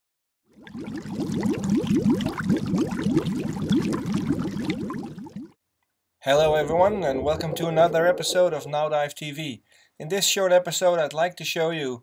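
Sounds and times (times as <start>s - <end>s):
air bubbles gurgling in water: 0.5s - 5.6s, 6.3s - 8.9s.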